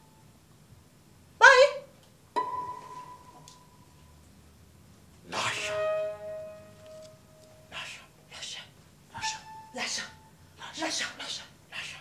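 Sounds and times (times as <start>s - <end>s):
rhythmic breathy whispered sounds: 7.6s - 9.5s, 10.6s - 12.0s.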